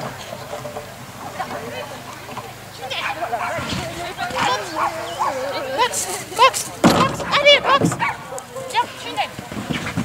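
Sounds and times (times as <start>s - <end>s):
people's voices: 0.0s - 10.0s
dog barking: 3.0s - 3.7s, 4.3s - 5.6s, 7.7s - 8.9s.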